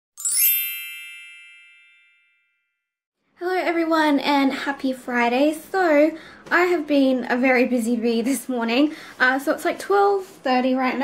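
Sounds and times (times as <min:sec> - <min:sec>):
sparkling chime: 0:00.2 - 0:02.6.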